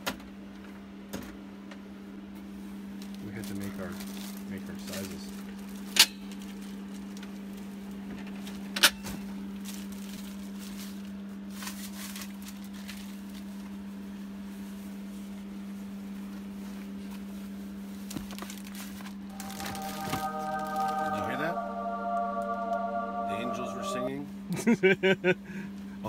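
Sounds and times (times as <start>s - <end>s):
choir-like sustained chords: 19.3s - 24.5s
low hum: 19.3s - 24.6s.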